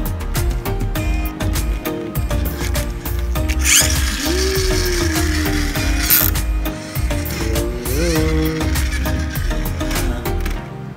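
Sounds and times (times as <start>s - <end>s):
toy truck gears whirring and ratcheting: 2.3s - 10.6s.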